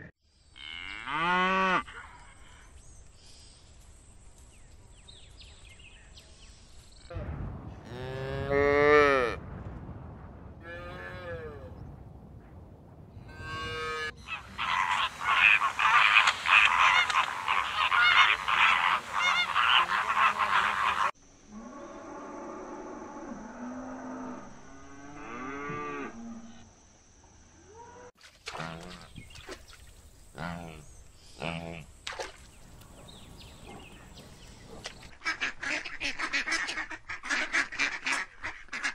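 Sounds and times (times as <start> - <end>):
flamingos honking and chattering: 13.6 - 21.2.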